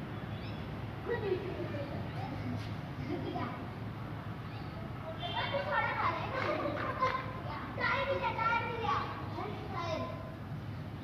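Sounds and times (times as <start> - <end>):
children chattering and calling: 1.0 - 10.4.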